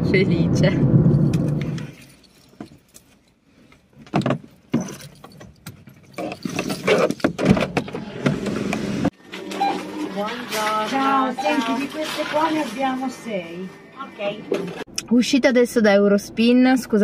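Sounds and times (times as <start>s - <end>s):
car keys jangling: 1.2s - 3.4s, 4.0s - 7.4s
car cabin road noise: 3.8s - 9.2s.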